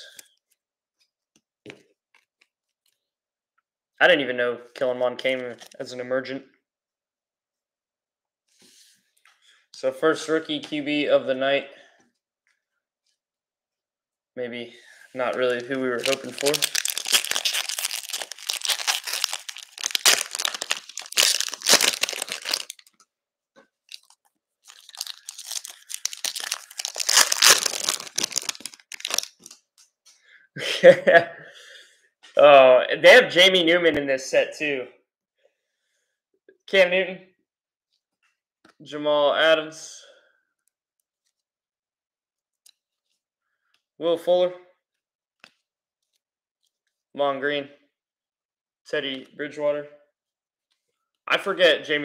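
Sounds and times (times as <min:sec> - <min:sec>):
wrapper crinkling and tearing: 0:15.2 - 0:23.0, 0:23.9 - 0:29.7.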